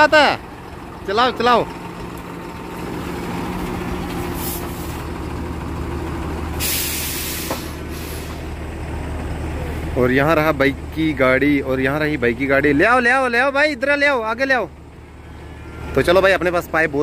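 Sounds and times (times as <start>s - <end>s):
diesel truck engine running: 0.0s - 17.0s
air brakes hissing: 4.2s - 5.1s, 6.5s - 8.6s.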